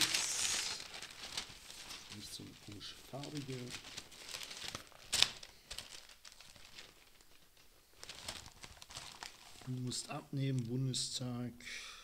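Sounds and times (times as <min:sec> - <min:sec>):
newspaper pages rustling: 0:00.0 - 0:10.8.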